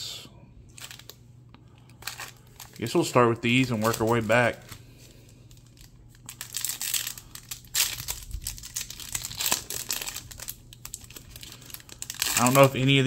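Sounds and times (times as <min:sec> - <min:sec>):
foil wrapper tearing and crinkling: 0:00.7 - 0:01.2, 0:01.8 - 0:13.0.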